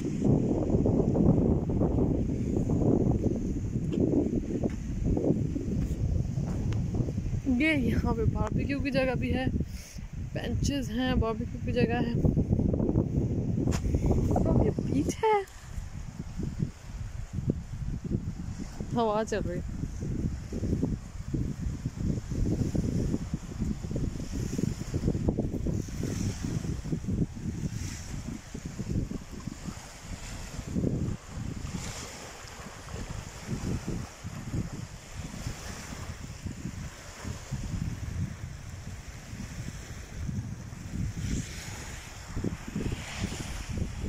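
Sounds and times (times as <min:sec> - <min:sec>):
small waves washing on shore: 0:00.0 - 0:44.0
wind buffeting microphone: 0:00.0 - 0:44.0.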